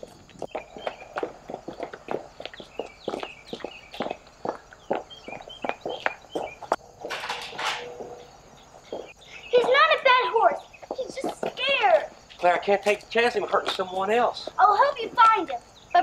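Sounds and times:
footsteps crunching on gravel: 0:00.0 - 0:16.0.

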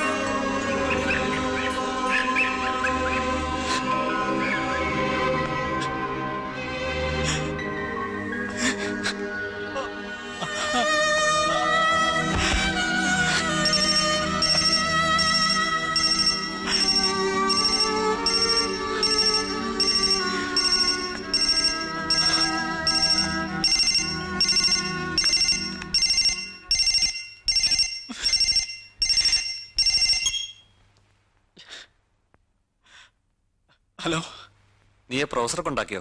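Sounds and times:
background music: 0:00.0 - 0:30.1
phone ringtone: 0:13.3 - 0:30.7.

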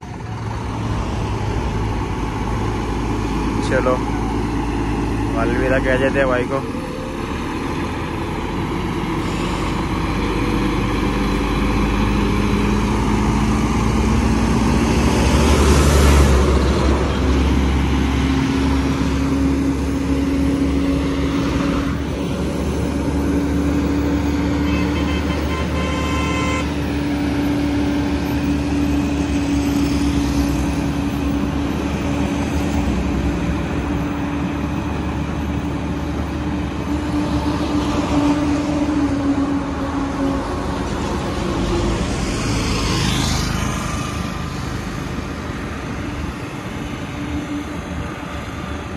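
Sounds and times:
truck diesel engine droning: 0:00.0 - 0:48.9.

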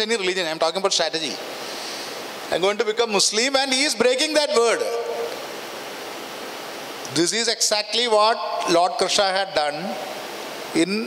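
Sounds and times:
steady hiss: 0:00.0 - 0:11.0
man speaking: 0:02.5 - 0:05.3, 0:07.1 - 0:10.1, 0:10.8 - 0:11.0.

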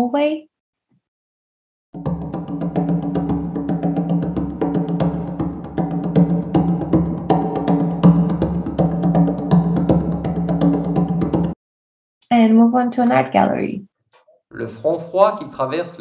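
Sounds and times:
conga drums with hallway reverb: 0:02.0 - 0:11.6.

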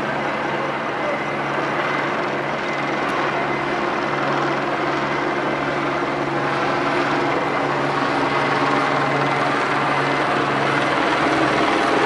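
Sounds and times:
engine drone: 0:00.0 - 0:12.0
street noise: 0:00.0 - 0:12.0.

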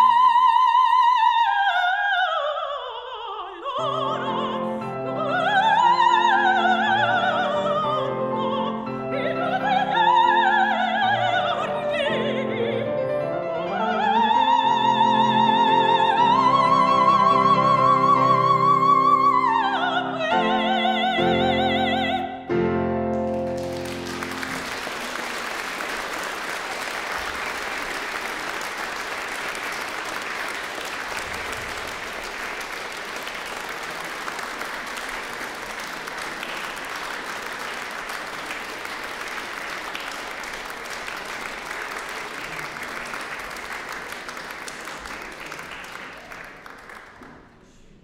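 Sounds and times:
audience applauding: 0:23.1 - 0:47.6.

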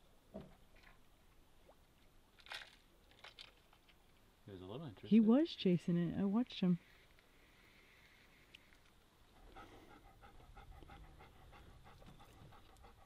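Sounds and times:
dog panting: 0:09.4 - 0:13.0.

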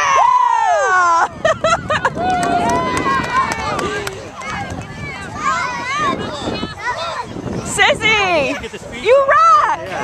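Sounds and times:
children and adults chattering: 0:02.8 - 0:10.0.

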